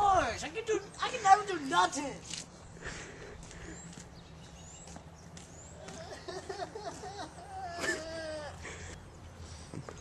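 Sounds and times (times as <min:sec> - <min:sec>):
person laughing: 0:05.9 - 0:09.0.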